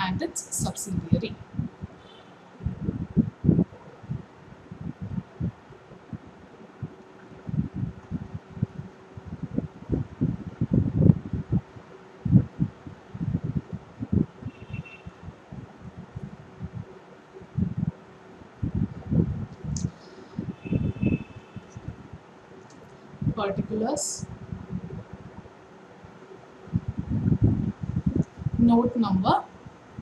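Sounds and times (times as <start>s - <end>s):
faint steady hum: 0.0s - 30.0s.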